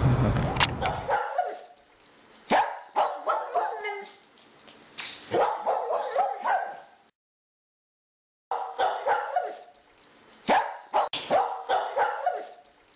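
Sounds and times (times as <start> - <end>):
dog barking and yipping: 0.8 - 1.8, 2.5 - 4.2, 5.2 - 7.0, 8.5 - 9.8, 10.4 - 12.7.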